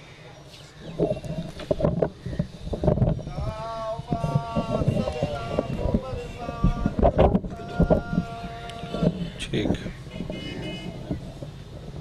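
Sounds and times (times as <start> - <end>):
microphone handling knocks: 0.9 - 3.3, 4.2 - 11.6
microphone handling rumble: 0.9 - 12.0.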